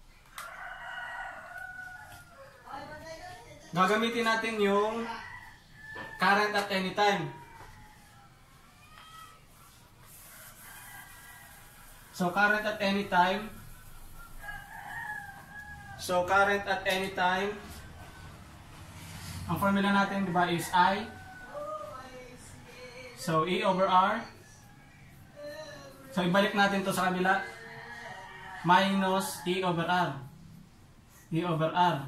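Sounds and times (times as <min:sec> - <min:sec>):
rooster crowing: 0:00.2 - 0:03.1, 0:03.8 - 0:30.6.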